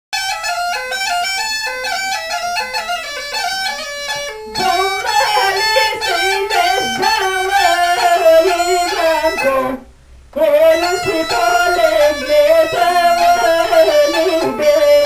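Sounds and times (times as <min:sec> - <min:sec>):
bagpipe folk melody: 0:00.2 - 0:09.8, 0:10.4 - 0:15.0
woman singing into microphone: 0:04.5 - 0:09.8.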